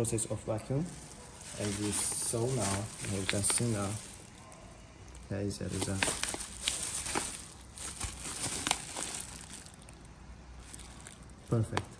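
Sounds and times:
plastic bag and gloves crinkling: 0.0s - 11.9s
sharp plastic crackles: 0.8s - 11.9s.

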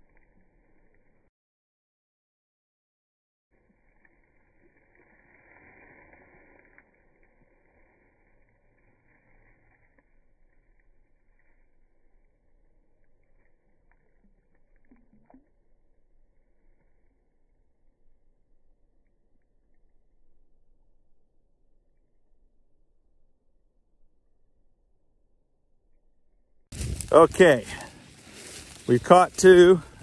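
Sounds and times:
faint ticks: 12.9s - 15.5s.

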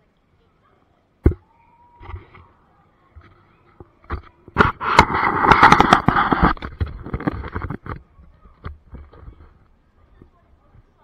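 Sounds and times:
camera scraping on dirt: 4.1s - 9.6s.

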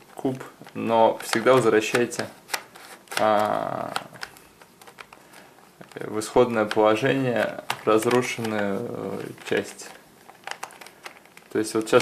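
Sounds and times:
puzzle cube plastic clicks: 0.1s - 12.0s.

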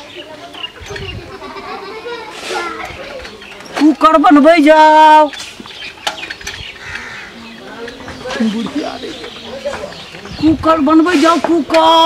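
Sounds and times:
children playing: 0.0s - 12.0s
voices calling and chattering: 0.0s - 12.0s.

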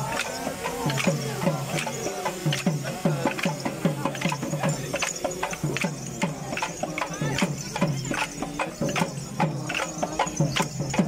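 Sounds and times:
hand drum dance rhythm: 0.0s - 11.0s.

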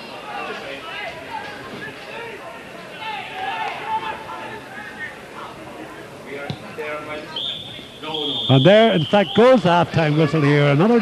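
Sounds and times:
referee whistle long blast: 7.3s - 9.6s.

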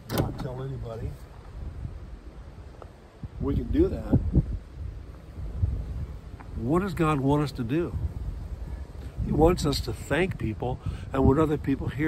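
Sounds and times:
wind buffeting microphone: 0.0s - 12.0s
man speaking: 0.1s - 1.2s, 6.5s - 8.1s, 9.2s - 12.0s.

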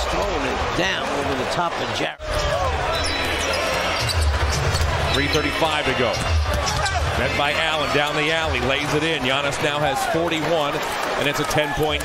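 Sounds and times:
indoor crowd noise: 0.0s - 12.0s.

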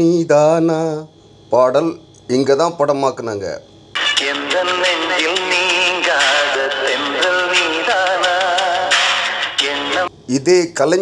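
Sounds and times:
instrumental backing music: 4.0s - 10.1s.

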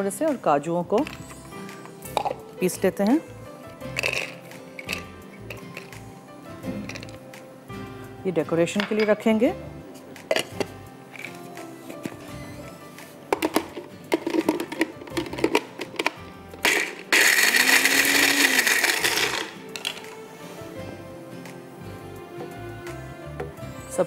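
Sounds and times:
electric chopper grinding: 16.7s - 19.6s.

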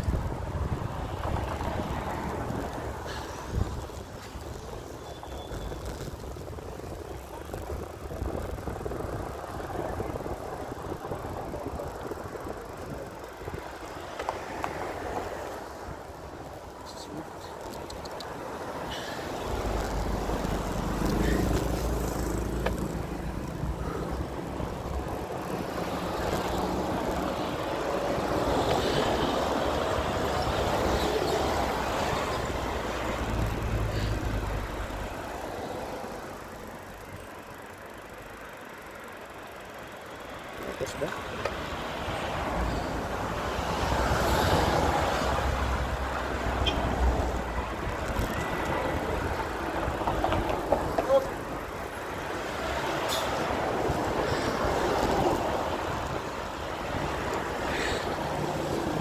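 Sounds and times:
road noise rush: 0.0s - 59.0s
vehicle engine rumble: 0.0s - 59.0s.

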